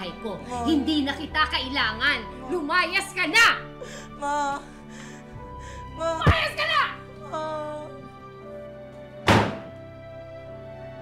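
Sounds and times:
slow sad background music: 0:00.0 - 0:11.0
door slamming shut: 0:09.2 - 0:09.7.

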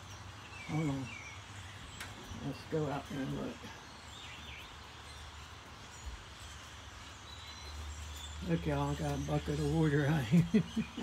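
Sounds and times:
distant bird chirps: 0:00.0 - 0:11.0
outdoor background hiss: 0:00.0 - 0:11.0.

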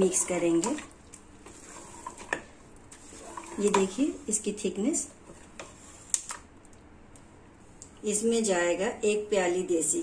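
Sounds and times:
soft squelching of stirring: 0:00.0 - 0:08.0.

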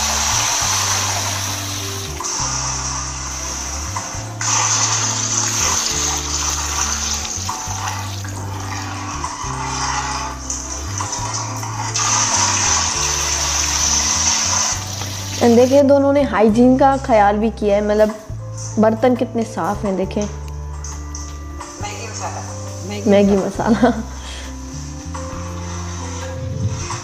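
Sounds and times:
water pouring into steel pot: 0:00.0 - 0:15.8
background music with bass line: 0:00.0 - 0:27.0.

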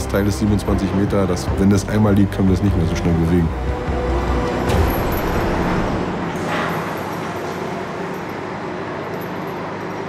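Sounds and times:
metal clank: 0:04.7 - 0:08.5.

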